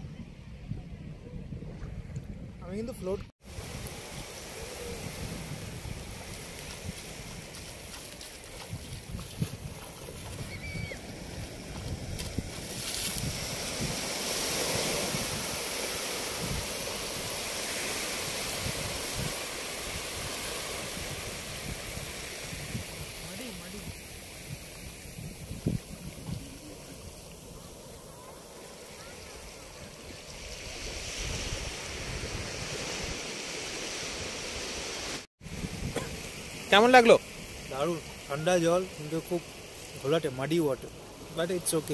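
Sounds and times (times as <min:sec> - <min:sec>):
wind buffeting microphone: 0:00.0 - 0:15.7, 0:18.2 - 0:28.3
small waves breaking on beach: 0:03.4 - 0:41.9.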